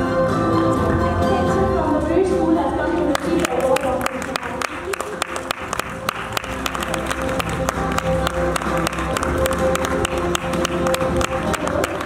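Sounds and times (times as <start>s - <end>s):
audience applause: 3.1s - 12.0s.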